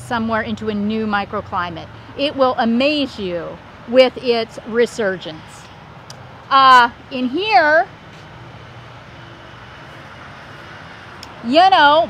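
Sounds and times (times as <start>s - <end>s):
distant traffic hum: 0.0s - 12.0s.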